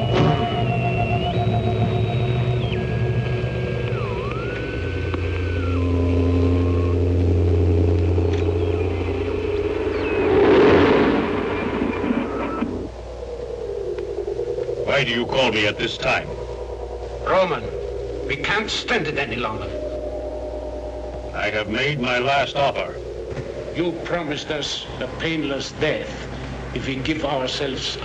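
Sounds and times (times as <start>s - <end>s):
electronic oscillator tones: 0.0s - 28.0s
hissing swell: 0.0s - 28.0s
low steady hum: 0.0s - 28.0s.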